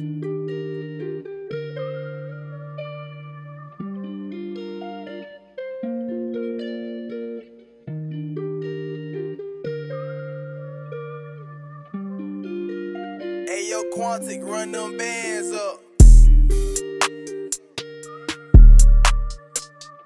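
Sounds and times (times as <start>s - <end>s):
melodic guitar loop: 0.0s - 20.0s.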